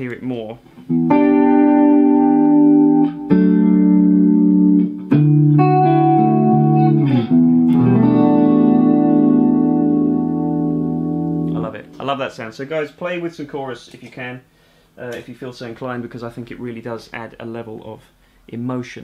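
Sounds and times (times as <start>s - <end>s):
clean electric guitar chords: 0.8s - 12.0s.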